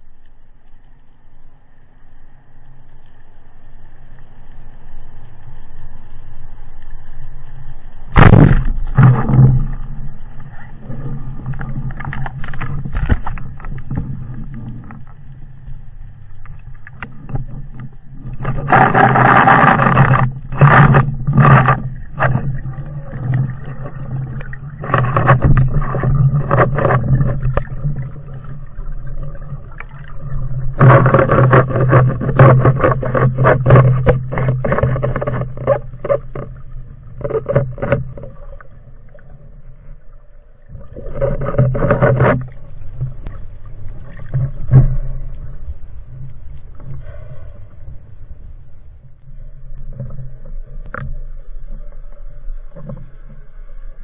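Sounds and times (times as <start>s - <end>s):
muffled underwater rushing and bubbling: 0.0s - 54.0s.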